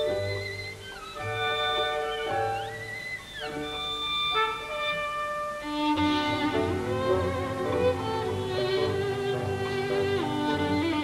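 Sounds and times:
solo violin playing held notes: 0.0 - 11.0.

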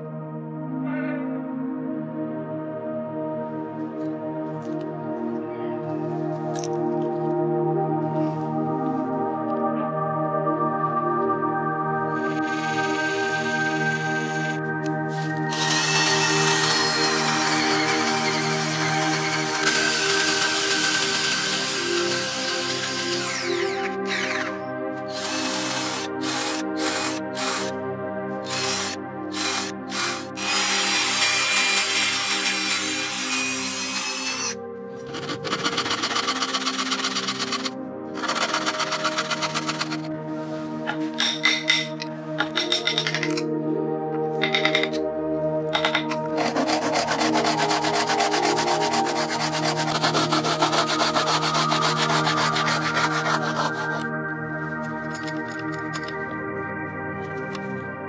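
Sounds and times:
background music: 0.0 - 58.0
cordless drill boring into wood: 12.2 - 14.6, 15.5 - 24.5, 25.1 - 27.7, 28.4 - 40.1, 46.4 - 54.0.

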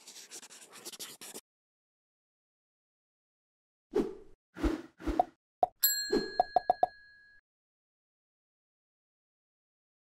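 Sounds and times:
bright bell-like ding: 5.8 - 7.4.

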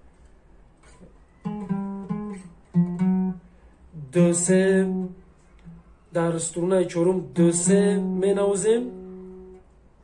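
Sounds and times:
acoustic guitar notes picked: 0.8 - 9.8.

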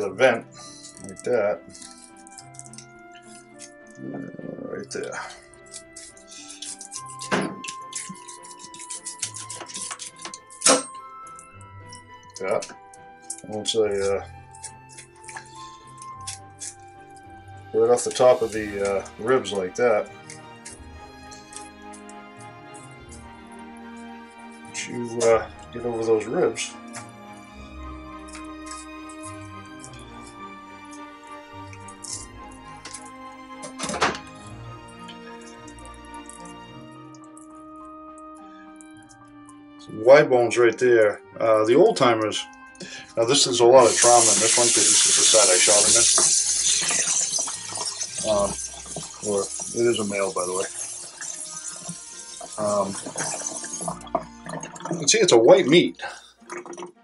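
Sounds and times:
background music sustained notes: 0.0 - 57.0
knife clicking and scraping on bone: 0.6 - 3.9, 5.4 - 12.0, 14.5 - 17.3
knife scraping cutting board: 5.8 - 10.2.

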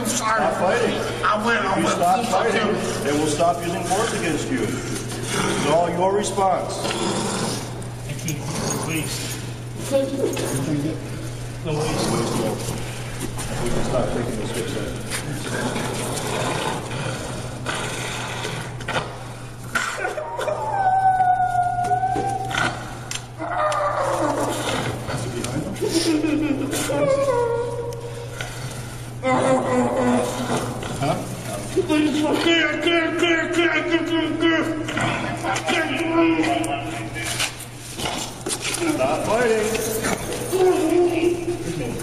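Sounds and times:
man crying out in distress: 20.0 - 22.5, 25.8 - 27.9
long high wail: 20.1 - 22.5.

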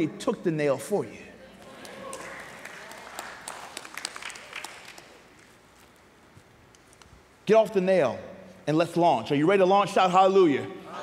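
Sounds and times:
congregation applauding: 1.7 - 5.3.

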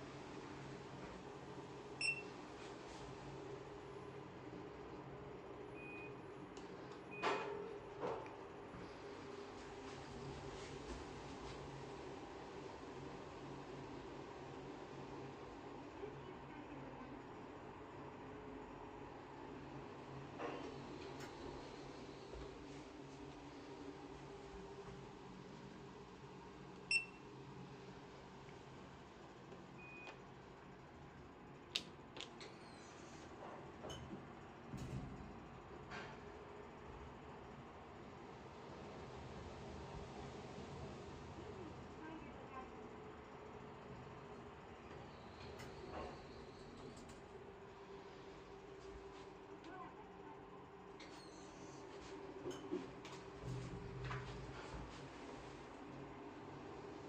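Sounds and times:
steady low hum: 0.0 - 57.0
card reader beep: 2.0 - 2.3.

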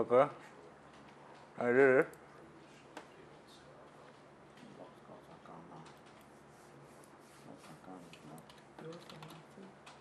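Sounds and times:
computer keyboard keystrokes: 8.4 - 10.0.

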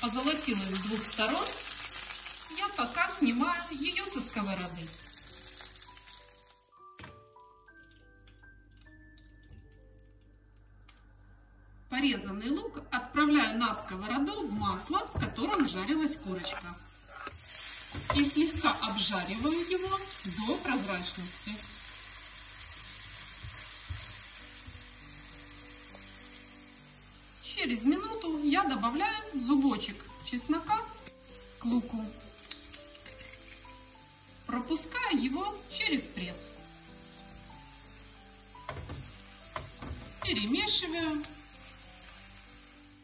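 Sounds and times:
oil sizzling in a frying pan: 0.0 - 6.9, 13.8 - 43.0
soft background music: 0.0 - 43.0
spatula knocking in pan: 38.6 - 40.4.

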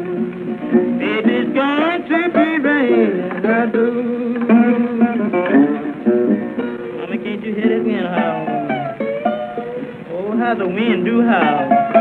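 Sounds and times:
person singing: 0.0 - 6.0, 6.8 - 9.0, 10.1 - 12.0
slide guitar blues: 0.0 - 12.0.

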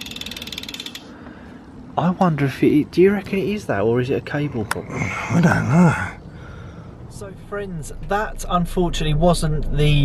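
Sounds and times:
bicycle freehub ticking: 0.0 - 1.4.

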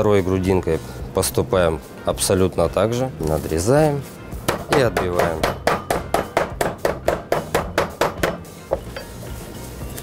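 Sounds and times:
meat mallet pounding chicken: 4.4 - 8.9.

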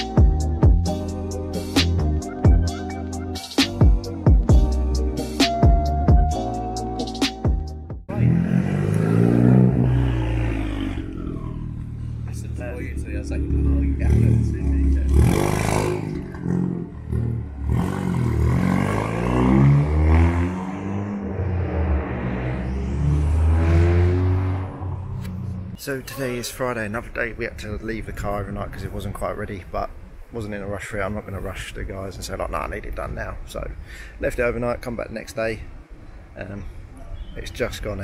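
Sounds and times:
car engine revving: 8.1 - 25.8.

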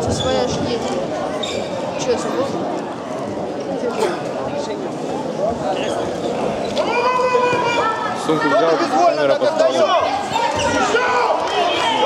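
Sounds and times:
voices shouting: 6.7 - 12.0.

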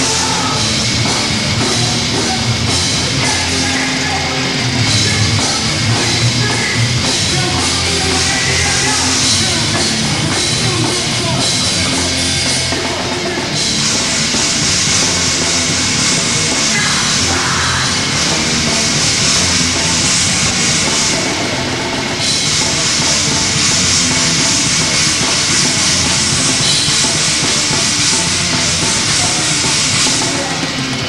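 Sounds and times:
bass guitar: 0.0 - 31.0
drum kit: 0.0 - 31.0
electric guitars: 0.0 - 31.0.

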